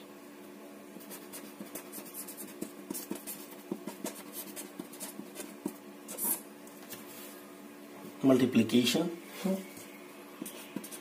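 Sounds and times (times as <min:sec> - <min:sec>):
marker pen scratching on paper: 0:01.0 - 0:06.4, 0:10.4 - 0:11.0.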